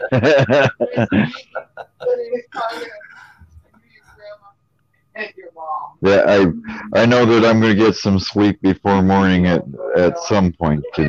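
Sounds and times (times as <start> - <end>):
person's voice over video call: 0.0 - 3.3, 6.0 - 11.0.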